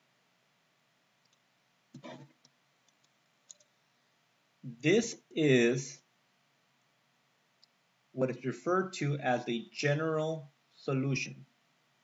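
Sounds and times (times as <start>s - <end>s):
faint clicks: 1.2s - 3.7s.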